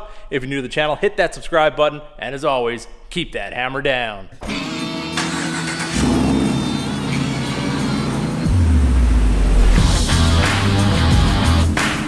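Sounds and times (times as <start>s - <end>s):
rock music with heavy bass: 4.4s - 12.0s.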